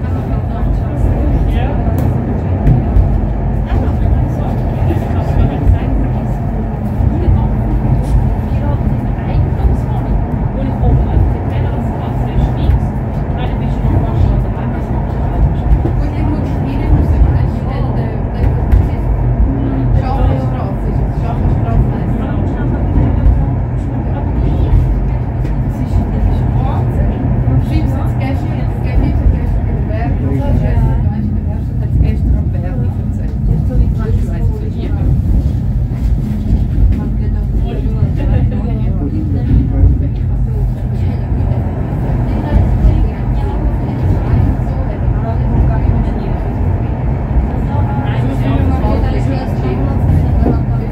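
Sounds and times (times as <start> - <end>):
funicular car rumbling: 0.0 - 50.9.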